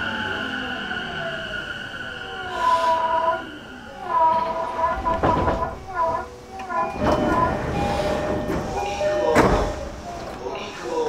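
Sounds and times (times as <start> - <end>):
wheels rumbling on rails: 4.2 - 11.0.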